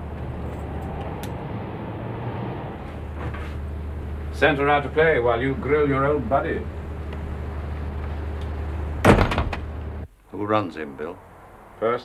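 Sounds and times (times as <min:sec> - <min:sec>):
steady low hum: 0:00.0 - 0:12.0
wooden door shutting: 0:09.0 - 0:09.8.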